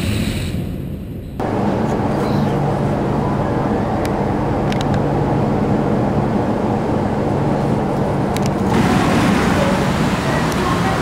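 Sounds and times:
roller coaster train on track: 0.0 - 11.0
rumbling ambient noise: 0.0 - 11.0.

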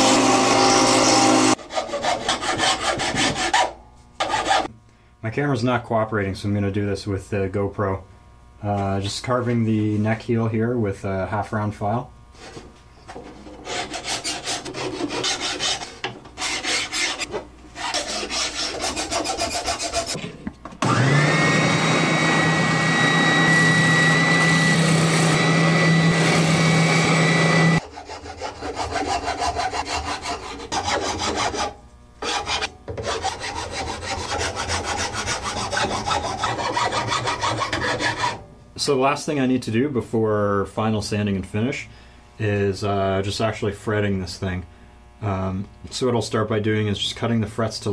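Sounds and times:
electric motor running: 0.0 - 1.6, 20.8 - 27.8
file rasping on wood: 0.0 - 4.7, 13.6 - 20.2, 25.2 - 38.4.

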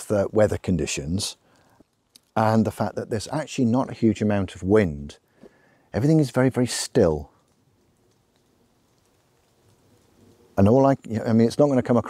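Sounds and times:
soft drizzle on leaves: 0.0 - 12.0
water dripping from leaves: 0.0 - 12.0.

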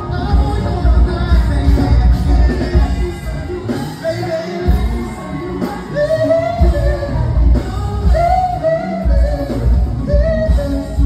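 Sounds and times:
band with heavy bass: 0.0 - 11.0
person singing: 0.0 - 11.0.

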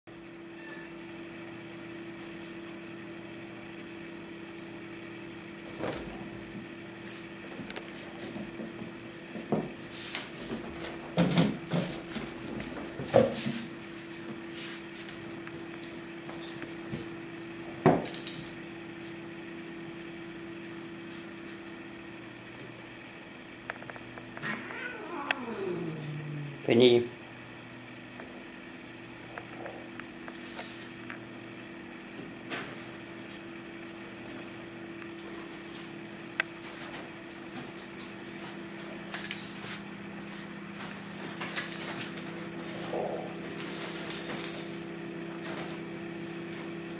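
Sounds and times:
low mechanical hum: 0.1 - 46.9
cat meowing: 24.4 - 26.6.

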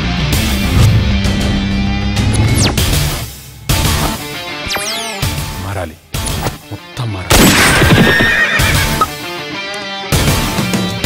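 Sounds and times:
dramatic film score music: 0.0 - 9.4
horse neighing: 7.8 - 9.1.

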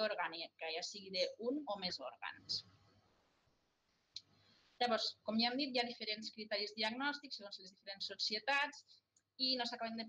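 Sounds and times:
woman speaking: 0.0 - 2.6, 4.8 - 8.8, 9.4 - 10.0.

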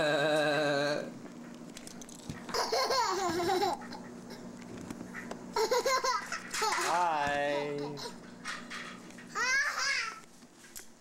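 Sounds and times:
young child giggling: 2.5 - 4.5, 5.6 - 6.8.

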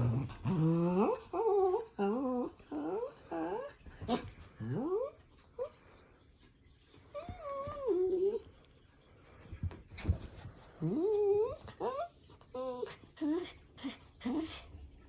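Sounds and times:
small dog whining and grumbling: 0.0 - 5.8, 6.7 - 8.5, 10.8 - 14.6.

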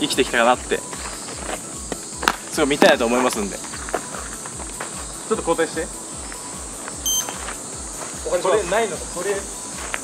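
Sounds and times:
background music with beat: 0.0 - 10.0
high electronic beep: 7.0 - 7.4.

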